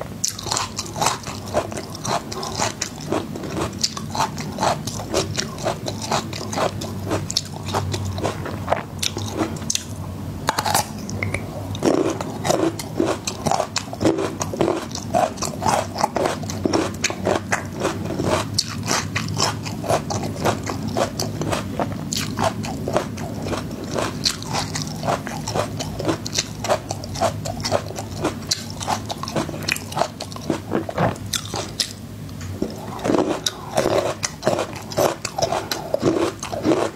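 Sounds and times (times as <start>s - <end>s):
crisp chewing crunches: 0.2s - 9.9s, 10.5s - 36.9s.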